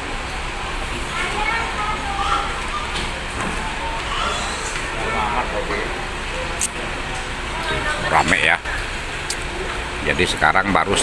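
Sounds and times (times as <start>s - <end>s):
indistinct chatter of diners: 0.0s - 11.0s.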